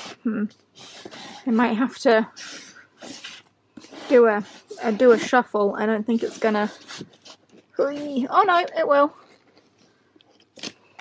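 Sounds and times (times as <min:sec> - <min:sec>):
book covers scuffing: 0:02.5 - 0:05.5.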